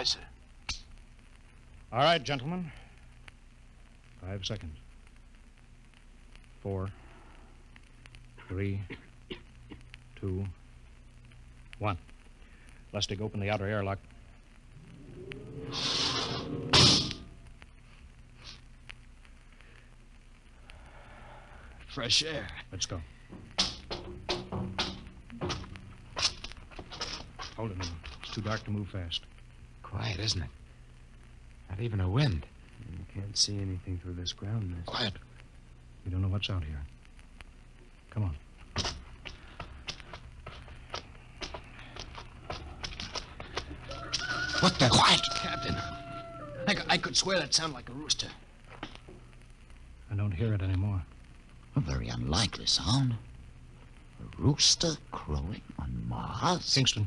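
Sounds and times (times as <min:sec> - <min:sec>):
low steady hum: 0:00.0 - 0:57.0
hiss of air: 0:14.8 - 0:17.4
loud metal clank: 0:15.9 - 0:17.4
footsteps walking slowly: 0:23.2 - 0:28.8, 0:37.4 - 0:49.8.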